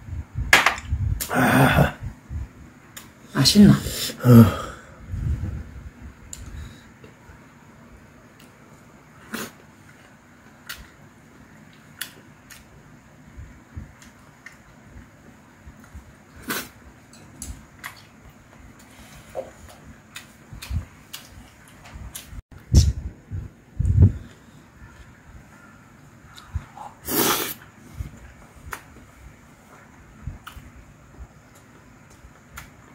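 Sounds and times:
soft eating sounds: 8.2 - 23.0, 23.7 - 32.9.

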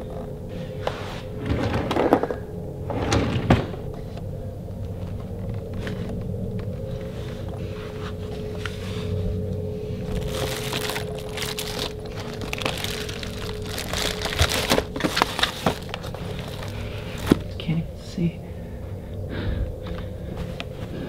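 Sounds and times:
steady low drone: 0.0 - 21.0
rustling and handling: 0.1 - 17.6.

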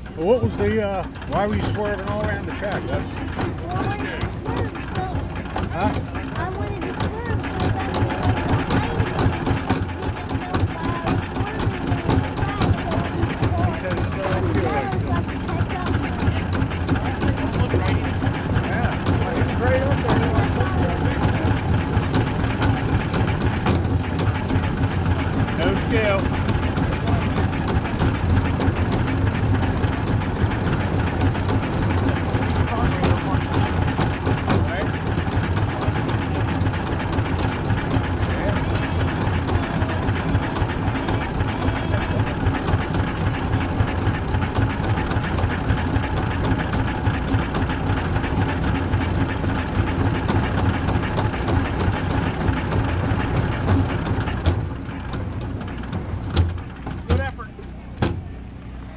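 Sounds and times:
race car engine idling: 0.0 - 58.9.

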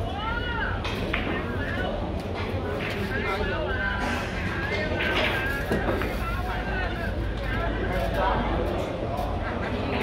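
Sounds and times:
indistinct voices in a hall: 0.0 - 10.0.

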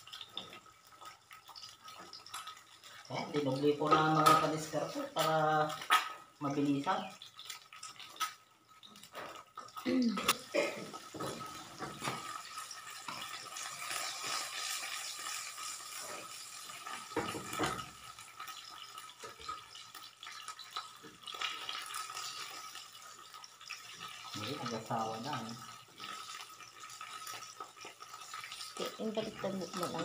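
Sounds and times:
eggs sizzling in a pan: 0.0 - 30.0.

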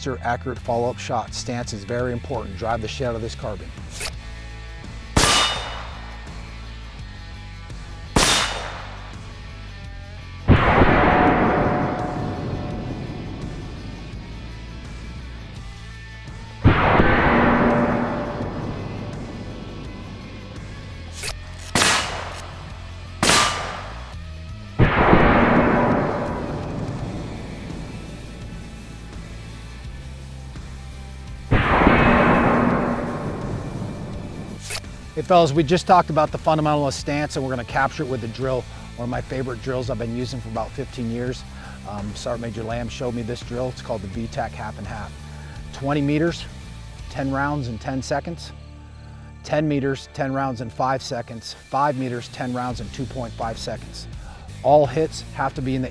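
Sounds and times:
low background music: 0.0 - 55.9
suppressed rifle shots: 5.2 - 6.4, 8.2 - 9.3, 10.5 - 14.5, 16.6 - 24.2, 24.8 - 29.4, 31.5 - 34.9
long echoing boom: 10.5 - 15.2, 16.6 - 20.9, 24.8 - 29.5, 31.5 - 34.6.

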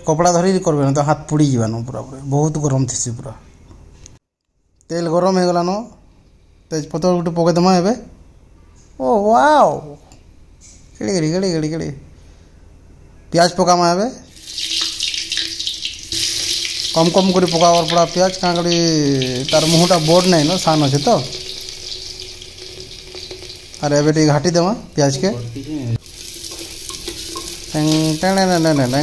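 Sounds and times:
onions sizzling in hot oil: 14.3 - 29.0
person speaking: 16.9 - 21.4, 23.8 - 26.0, 27.6 - 29.0
spoon stirring in clay pot: 26.0 - 29.0.

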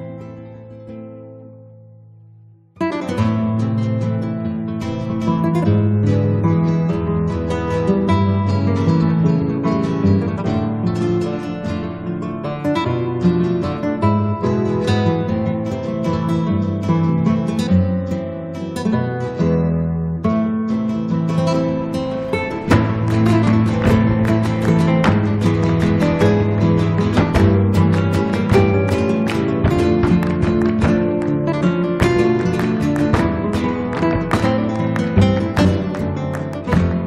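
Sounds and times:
acoustic guitar music: 0.0 - 37.0.

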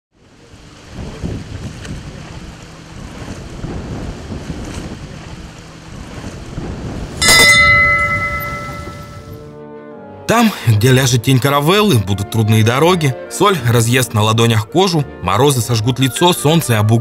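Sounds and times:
wind: 0.1 - 9.6
sea waves: 0.2 - 9.4
steady ringing tone: 7.2 - 9.5.

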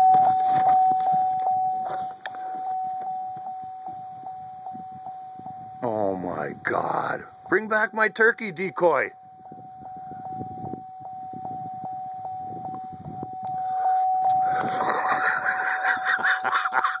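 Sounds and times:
steady high tone: 0.0 - 17.0.

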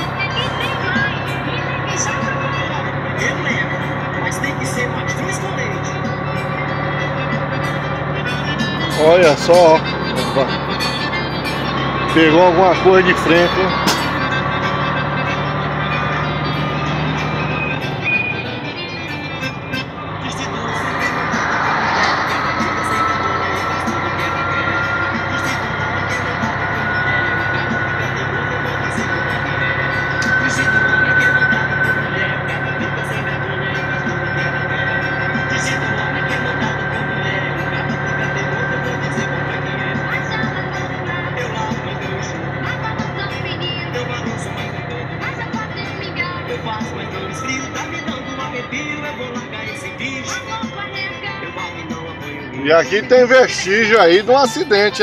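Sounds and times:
thin whine rising in pitch: 0.0 - 55.0
truck diesel engine in cab: 0.0 - 55.0.

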